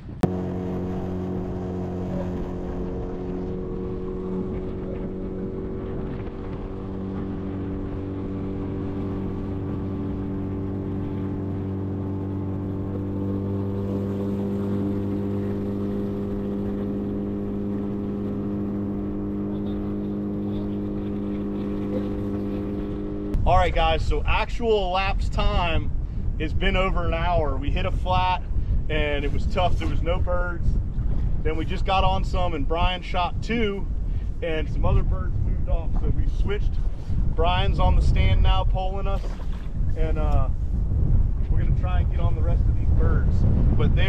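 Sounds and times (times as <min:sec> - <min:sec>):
outboard motor running: 0:00.0 - 0:24.4, 0:27.9 - 0:44.0.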